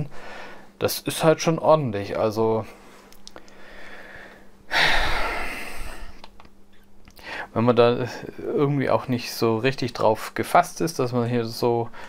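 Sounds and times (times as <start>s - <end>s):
person breathing out loudly: 3.5s - 6.2s.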